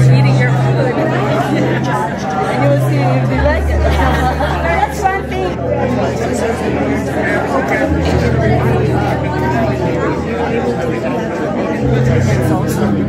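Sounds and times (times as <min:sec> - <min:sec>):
crowd of people talking: 0:00.0 - 0:13.0.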